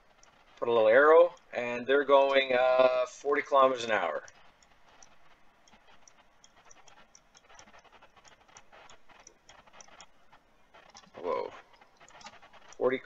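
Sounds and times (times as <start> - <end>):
stylus scratching on tablet: 0.0 - 13.0.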